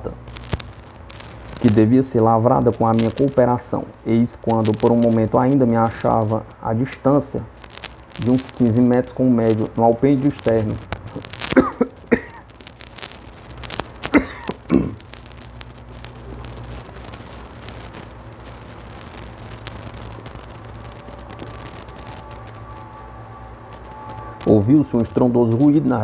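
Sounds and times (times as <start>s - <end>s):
steady low hum: 0.0s - 26.0s
man coughing and clearing throat: 11.5s - 12.4s, 14.1s - 15.0s.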